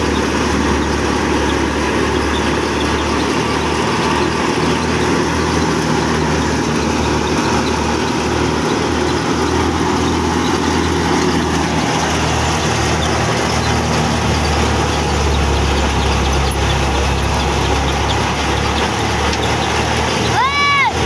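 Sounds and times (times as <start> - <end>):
thresher mechanical hum: 0.0 - 21.0.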